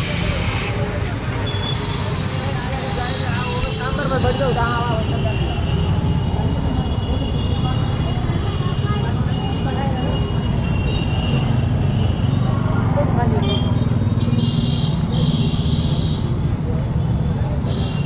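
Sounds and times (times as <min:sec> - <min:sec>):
people talking: 0:00.0 - 0:10.7, 0:12.5 - 0:13.7
motorcycles and rickshaws passing: 0:00.0 - 0:18.0.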